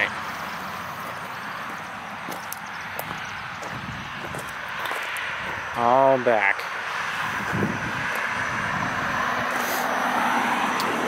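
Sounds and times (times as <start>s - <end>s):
motor vehicle rushing: 0.0s - 5.8s, 6.7s - 11.0s.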